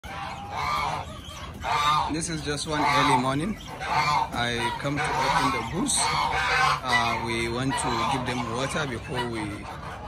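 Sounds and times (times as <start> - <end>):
geese honking: 0.0 - 10.0.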